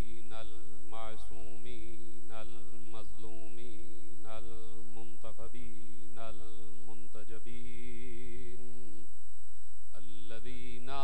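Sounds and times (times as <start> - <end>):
man chanting into microphone: 0.0 - 9.1, 9.9 - 11.0
low steady hum: 0.0 - 11.0.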